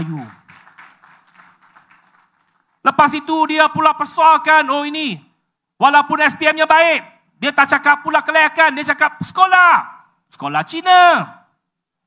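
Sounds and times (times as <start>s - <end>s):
man speaking into a microphone: 0.0s - 0.4s, 2.8s - 11.6s
audience clapping: 0.0s - 2.9s.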